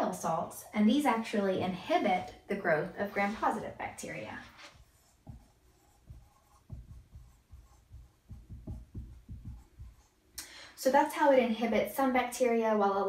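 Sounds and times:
marker writing on whiteboard: 0:01.5 - 0:10.2.

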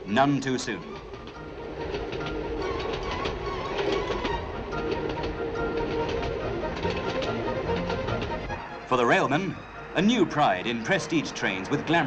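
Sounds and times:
train rumbling on rails: 0:00.0 - 0:12.0
wheels clicking over rail joints: 0:00.0 - 0:12.0.

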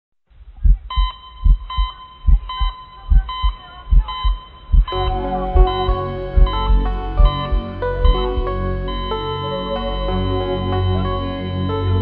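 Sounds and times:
heartbeat double thump: 0:00.6 - 0:08.6
high electronic tone: 0:00.9 - 0:12.0.

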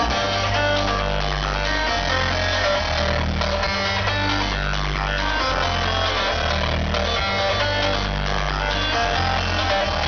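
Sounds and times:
loud trance music: 0:00.0 - 0:10.0.

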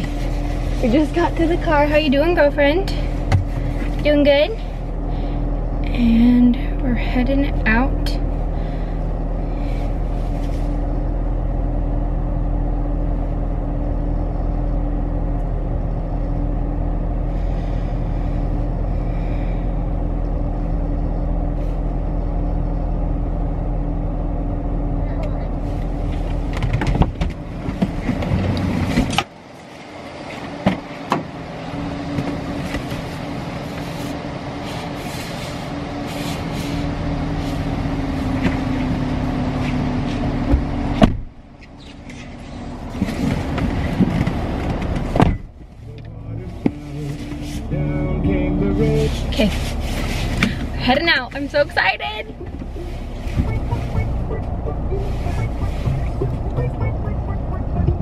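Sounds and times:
car engine idling: 0:00.0 - 0:58.0
knocks and rustling: 0:03.2 - 0:04.2, 0:26.1 - 0:29.3, 0:39.6 - 0:45.8.

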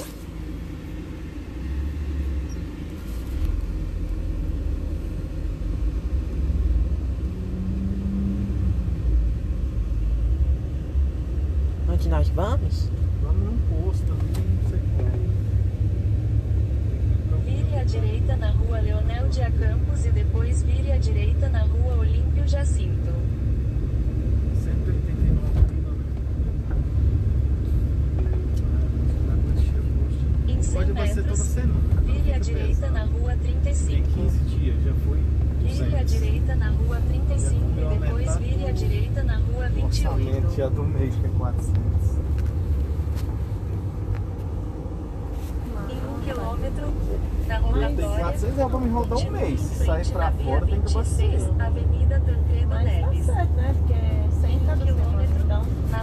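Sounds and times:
vehicle engine and road rumble: 0:00.0 - 0:56.0.

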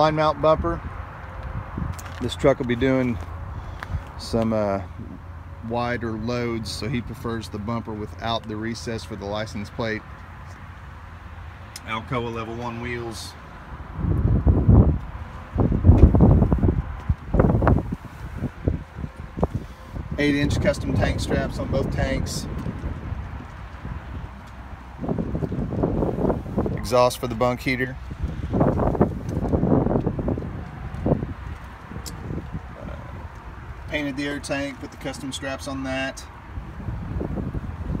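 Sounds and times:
wind buffeting microphone: 0:00.0 - 0:05.3, 0:12.6 - 0:34.0, 0:36.3 - 0:38.0.

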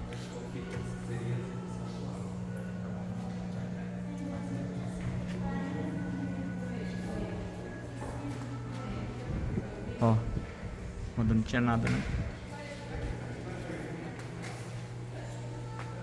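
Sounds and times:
steady low drone: 0:00.0 - 0:12.5.

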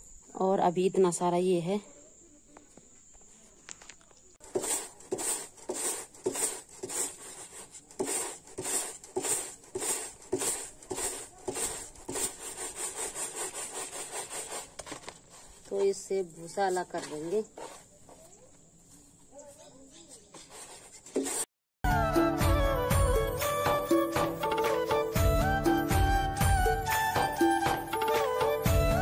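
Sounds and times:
dry plants scraped on board: 0:04.4 - 0:18.3, 0:18.9 - 0:21.5.

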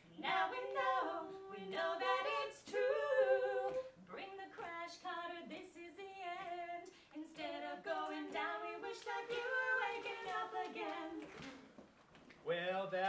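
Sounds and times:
group singing a cappella: 0:00.0 - 0:11.8.

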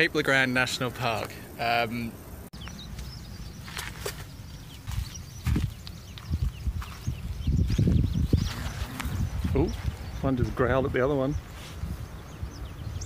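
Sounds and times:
faint bird chirps: 0:02.0 - 0:13.0
kangaroo growling: 0:08.4 - 0:09.6.

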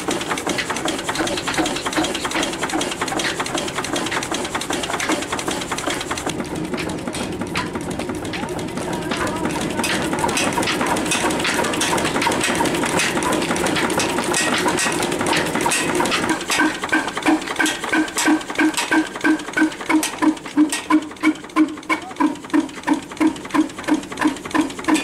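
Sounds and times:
stationary diesel engine running: 0:00.0 - 0:25.0.

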